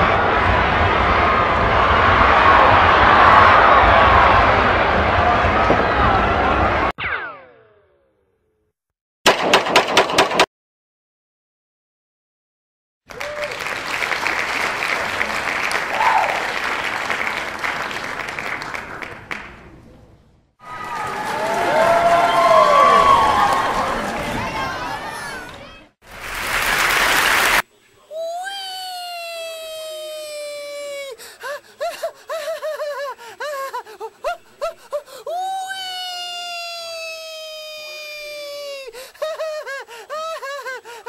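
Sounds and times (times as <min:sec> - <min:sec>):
crowd applause: 0:13.1 - 0:19.7, 0:20.6 - 0:27.6.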